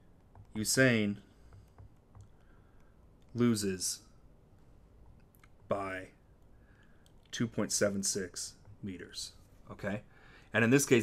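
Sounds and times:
stylus tapping on tablet: 0.2 - 0.7, 1.4 - 2.4.

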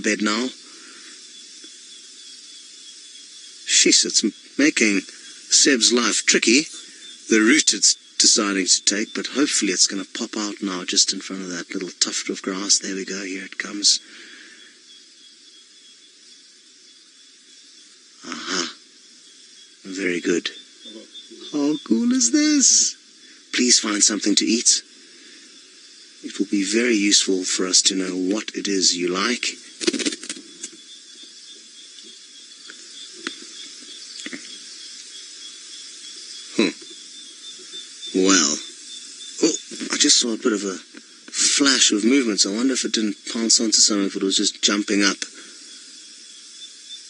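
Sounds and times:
thin high steady tone: 0.0 - 14.0, 18.2 - 47.0
constant hiss: 0.0 - 47.0
faint night-time outdoor noise: 0.0 - 47.0
faint clicks: 29.8 - 35.1.

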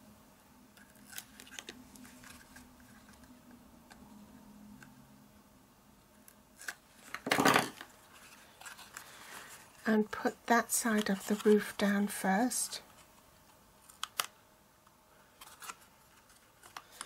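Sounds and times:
hands handling thin card: 15.4 - 17.0.

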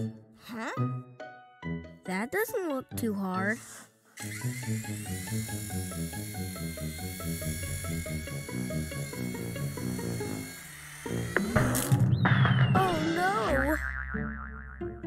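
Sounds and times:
bouncy cartoon music: 0.0 - 15.0
toy helicopter buzzing whir: 3.4 - 12.0.

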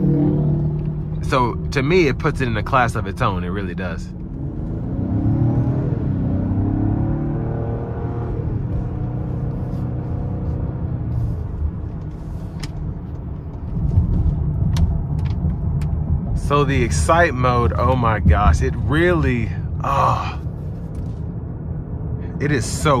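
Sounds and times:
car engine accelerating hard: 0.0 - 3.3, 4.1 - 21.2
deep engine rumble: 0.0 - 23.0.

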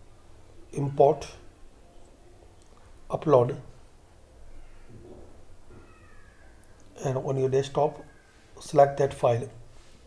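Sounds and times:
faint animal call: 4.5 - 6.8.

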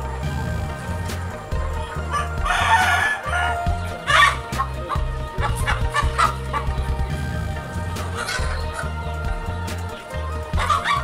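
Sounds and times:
background music with bass line: 0.0 - 11.0
chickens clucking and calling: 0.7 - 11.0.

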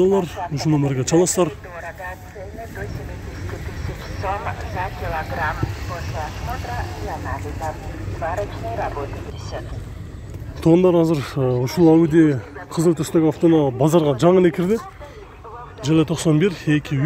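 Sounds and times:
distant people talking: 0.0 - 17.0
steady low rumble: 0.0 - 17.0.

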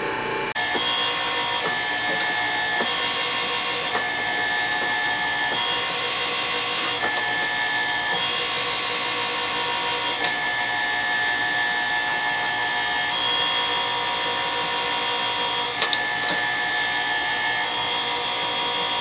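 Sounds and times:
electric gear-motor whine: 0.0 - 19.0.

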